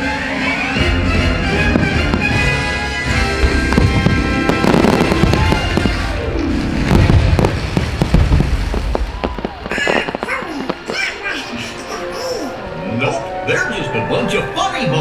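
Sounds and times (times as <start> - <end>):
music soundtrack: 0.0 - 8.9, 10.0 - 15.0
fireworks bursting and booming: 0.0 - 12.0.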